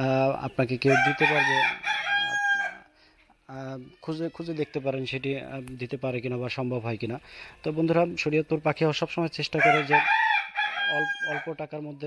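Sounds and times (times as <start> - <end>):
man's voice: 0.0 - 1.7
rooster crowing: 0.8 - 3.0, 9.6 - 11.6.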